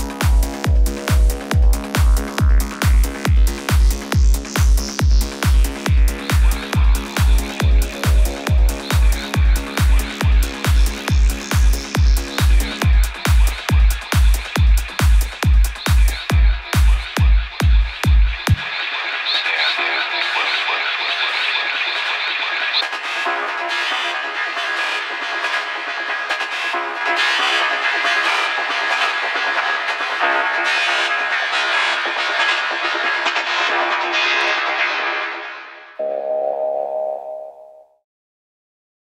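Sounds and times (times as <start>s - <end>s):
textured synth atmosphere: 36.0s - 37.8s.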